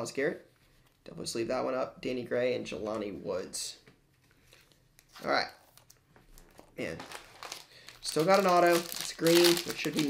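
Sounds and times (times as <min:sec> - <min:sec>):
foil wrapper crinkling: 0:06.4 - 0:10.0.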